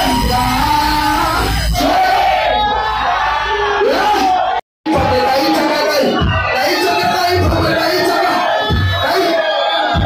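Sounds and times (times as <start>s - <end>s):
crowd shouting and singing along: 0.0s - 10.0s.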